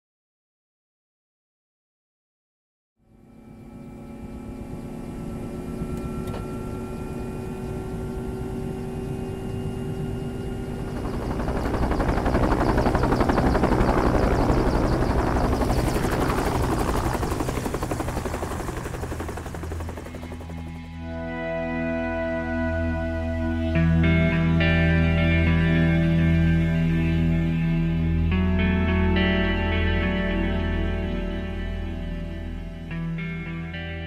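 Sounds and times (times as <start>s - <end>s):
helicopter engine and rotor chop: 3.3s - 21.2s.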